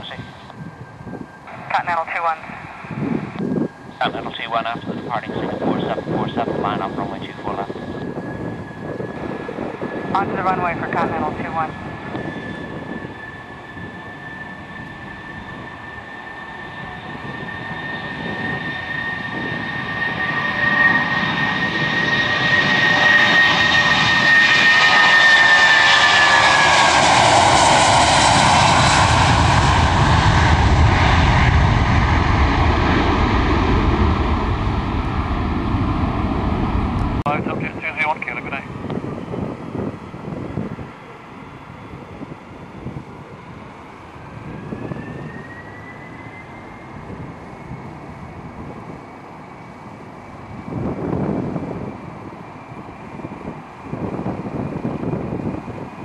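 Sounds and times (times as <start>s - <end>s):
jet airliner taking off: 0.0s - 56.0s.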